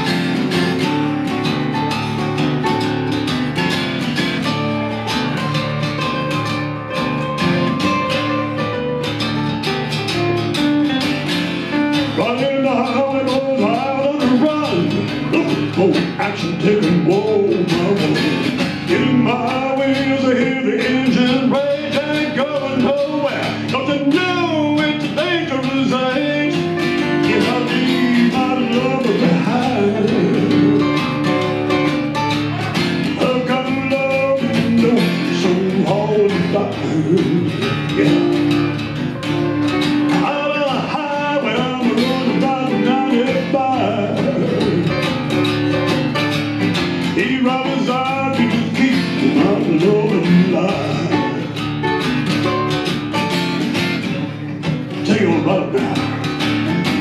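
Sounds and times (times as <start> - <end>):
acoustic guitars strumming and picking: 0.0 - 57.0
man singing: 12.0 - 45.7, 47.0 - 51.6, 54.1 - 56.5.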